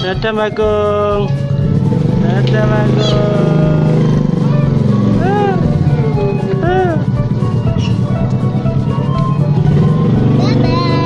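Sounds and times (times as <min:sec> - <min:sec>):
motorcycle engine passing by: 0:01.2 - 0:11.0.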